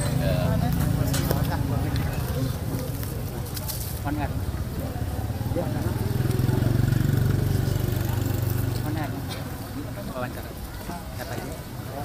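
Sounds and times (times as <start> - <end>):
faint voices: 0.0 - 12.0
small vehicle engine passing: 4.3 - 9.9.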